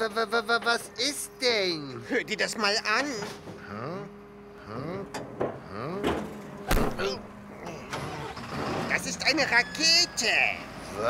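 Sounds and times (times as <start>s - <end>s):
garbage truck engine humming: 0.0s - 11.0s
rising hydraulic whines: 3.4s - 11.0s.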